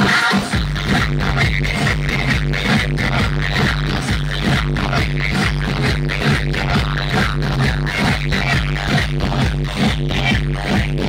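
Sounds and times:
electronic dance music with heavy bass: 0.0s - 11.0s.

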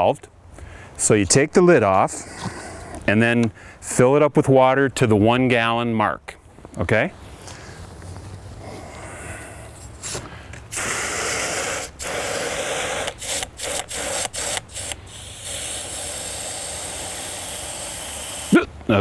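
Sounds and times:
hose spraying into plastic jug: 10.0s - 18.6s.

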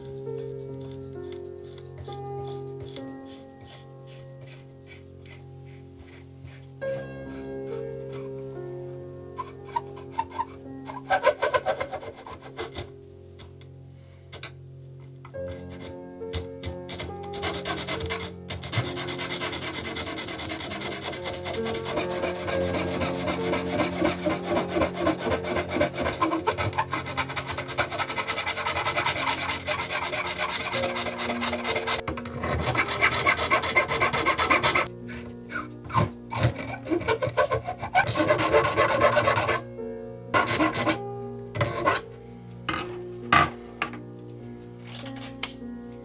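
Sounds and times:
file rasping in wood: 0.8s - 6.7s, 9.4s - 12.9s, 15.5s - 39.6s, 40.4s - 41.0s, 41.6s - 42.0s.

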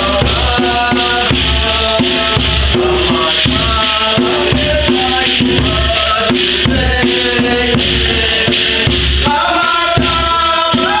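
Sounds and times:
hand drum beating: 0.0s - 11.0s
shaken rattle jingle: 0.0s - 11.0s
voices singing through microphone: 0.0s - 11.0s.

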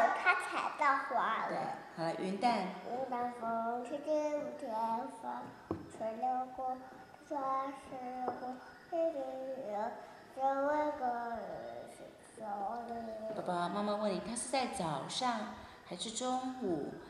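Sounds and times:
faint taps: 5.4s - 6.0s.

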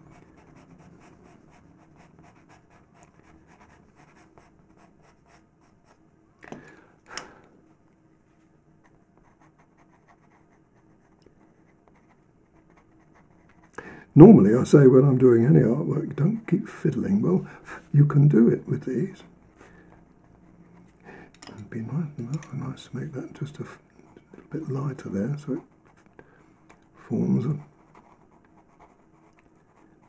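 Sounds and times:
pencil scratching on paper: 0.0s - 6.0s, 9.2s - 13.7s, 27.5s - 30.0s.

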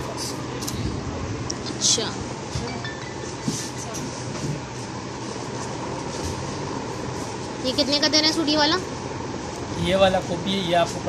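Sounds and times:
faint voices: 0.0s - 6.3s
busy shop din: 0.0s - 11.0s.

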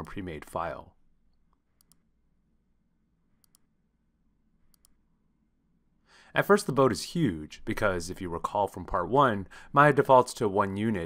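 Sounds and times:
computer mouse clicks: 1.3s - 2.1s, 3.4s - 3.7s, 4.7s - 5.0s.

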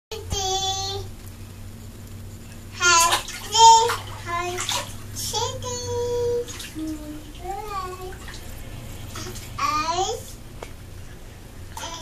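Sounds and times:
bath water splashing: 2.8s - 10.4s.

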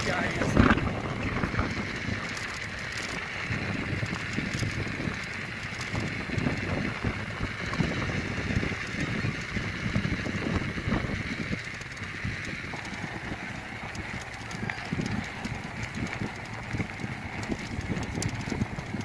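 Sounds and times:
bicycle rattling on bumpy track: 0.0s - 19.0s
wind rumbling on microphone: 0.0s - 19.0s.

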